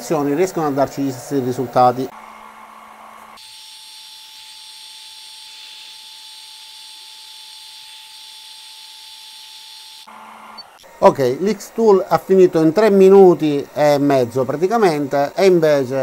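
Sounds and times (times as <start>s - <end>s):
high whine with hiss: 0.0s - 2.5s, 4.0s - 16.0s
laser engraver humming: 0.0s - 16.0s.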